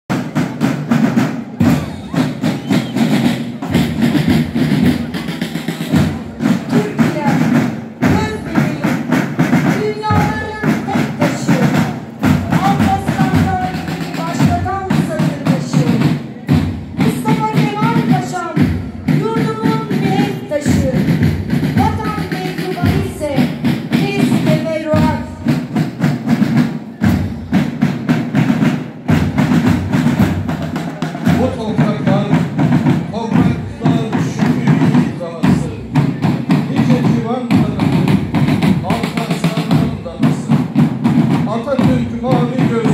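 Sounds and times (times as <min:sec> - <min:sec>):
marching band drums: 0:00.1 - 0:42.9.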